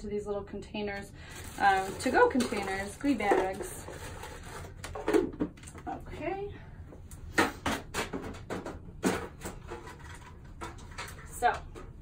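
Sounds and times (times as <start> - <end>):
rummaging: 1.3 - 5.7
plastic containers clattering on cart: 1.7 - 4.1.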